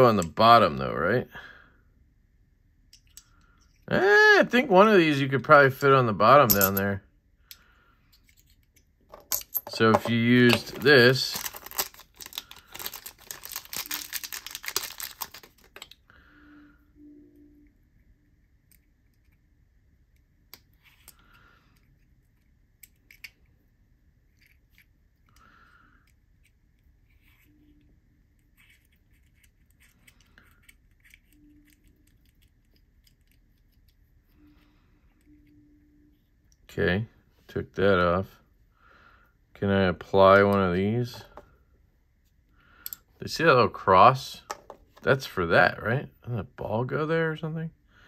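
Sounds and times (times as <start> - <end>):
plastic bag crinkling: 10.2 - 15.8.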